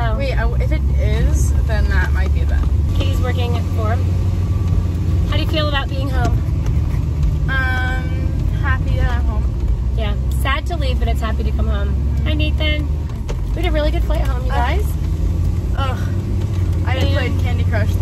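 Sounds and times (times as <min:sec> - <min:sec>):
people talking: 0:00.0 - 0:04.1, 0:05.3 - 0:06.4, 0:07.5 - 0:12.9, 0:13.6 - 0:15.0, 0:15.8 - 0:16.2, 0:16.8 - 0:18.0
wind and road rumble: 0:00.0 - 0:18.0.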